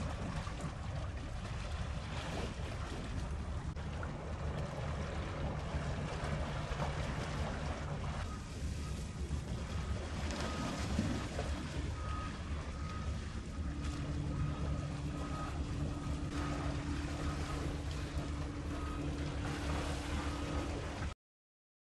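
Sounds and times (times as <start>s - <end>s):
outboard motor running: 0.0s - 21.1s
engine hum: 0.0s - 21.2s.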